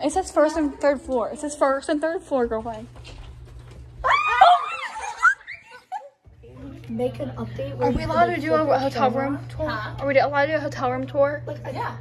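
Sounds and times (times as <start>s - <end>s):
girls squealing excitedly: 4.0s - 6.1s.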